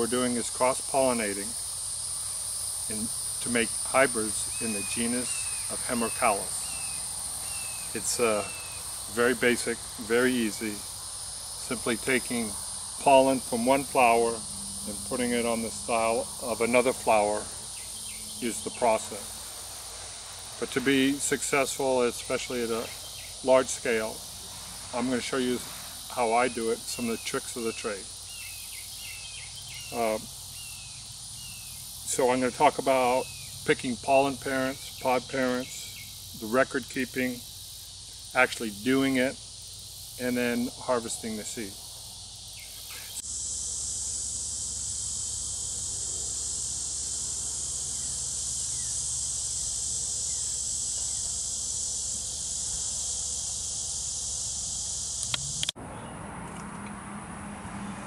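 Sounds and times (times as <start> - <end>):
high-pitched insect chorus: 0.0 - 58.0
sharp clicks: 55.2 - 55.8.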